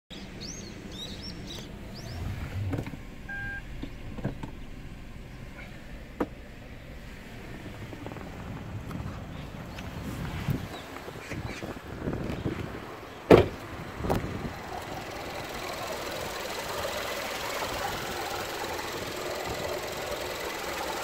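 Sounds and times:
birds chirping: 0.1s - 6.0s, 6.6s - 21.0s
low rumble in car cabin: 0.2s - 21.0s
short electronic beep: 3.3s - 3.7s.

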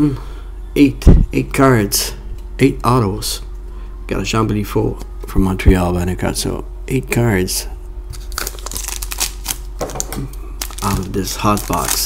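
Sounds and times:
foil card pack crinkling: 8.1s - 12.0s.

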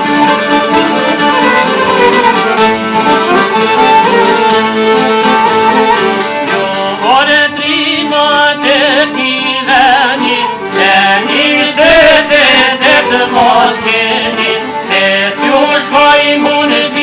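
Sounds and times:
plucked lutes: 0.0s - 17.0s
man singing folk song: 6.2s - 17.0s.

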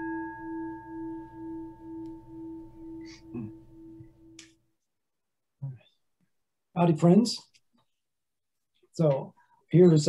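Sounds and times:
singing bowl ringing: 0.0s - 4.4s.

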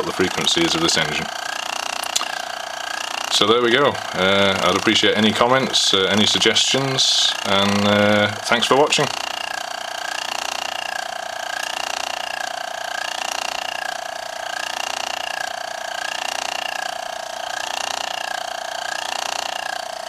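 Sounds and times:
stirling engine buzzing rattle: 0.0s - 20.0s.

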